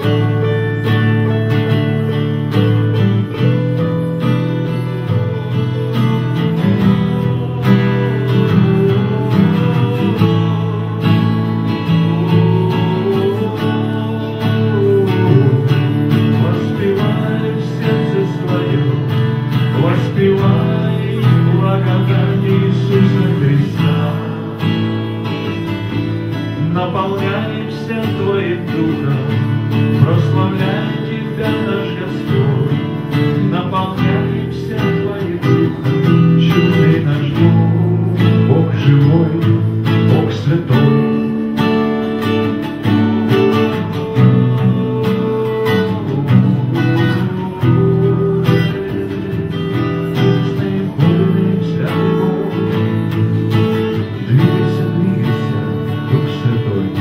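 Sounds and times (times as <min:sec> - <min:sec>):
acoustic guitars strumming: 0:00.0 - 0:57.0
man singing into a microphone: 0:00.0 - 0:57.0.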